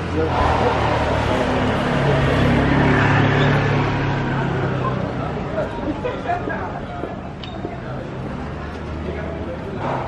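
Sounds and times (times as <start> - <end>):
vehicle engine humming: 0.0 - 6.1
street noise: 0.0 - 10.0.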